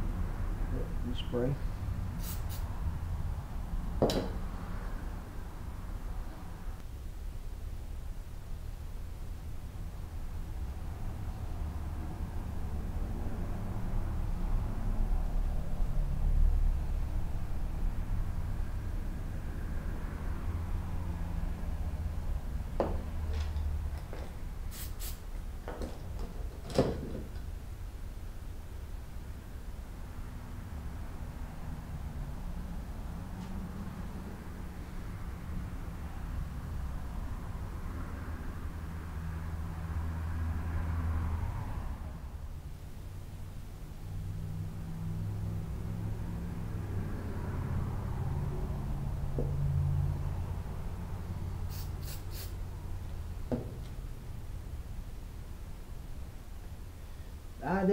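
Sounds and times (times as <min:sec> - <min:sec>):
sharp clicks and knocks: 0:25.6 - 0:27.5.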